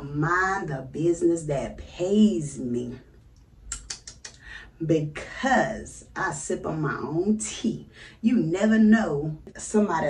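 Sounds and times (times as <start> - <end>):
person talking: 0.0 - 3.0, 3.7 - 10.0
sharp clicks: 3.7 - 4.4.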